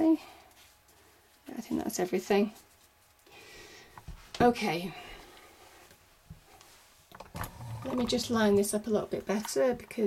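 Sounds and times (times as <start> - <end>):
person speaking: 7.8 - 10.0.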